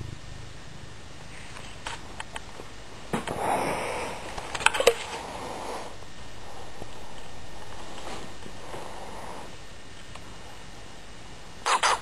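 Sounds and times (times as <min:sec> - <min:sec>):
cat purring: 0:00.0 - 0:09.6
breathy rush: 0:03.2 - 0:06.7.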